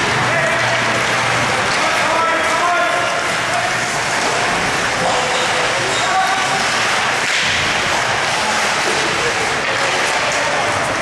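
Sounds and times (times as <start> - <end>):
spectators and players calling: 0.0 - 7.3.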